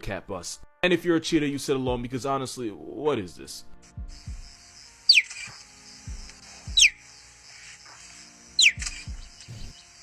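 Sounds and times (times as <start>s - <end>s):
background music: 0.0s - 10.0s
cheetah chirping: 4.1s - 10.0s.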